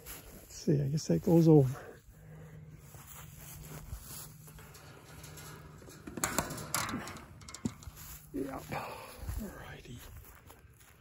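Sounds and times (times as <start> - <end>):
rustling of fence wire: 0.0 - 11.0.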